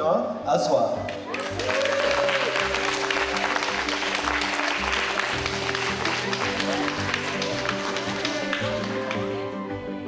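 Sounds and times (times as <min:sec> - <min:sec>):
audience applauding: 0:01.1 - 0:09.6
music of sustained tones: 0:01.1 - 0:10.0.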